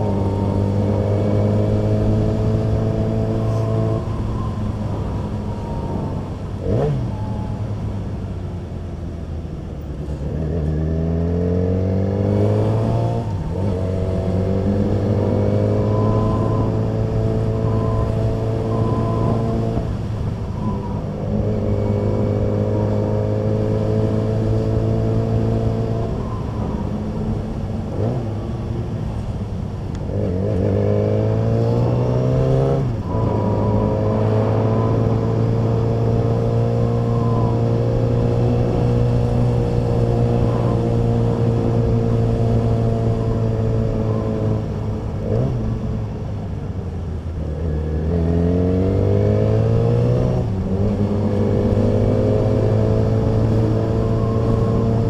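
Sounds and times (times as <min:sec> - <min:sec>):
motorcycle engine revving: 0:00.0 - 0:05.8, 0:10.2 - 0:46.4, 0:47.4 - 0:55.0.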